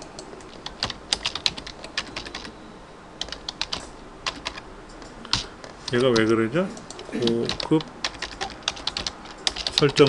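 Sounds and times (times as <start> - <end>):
computer keyboard typing: 0.1 - 2.5, 3.2 - 10.0.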